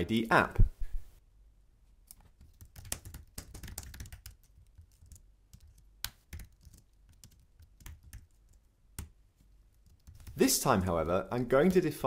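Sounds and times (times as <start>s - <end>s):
typing on computer keyboard: 2.1s - 9.1s, 9.7s - 10.4s.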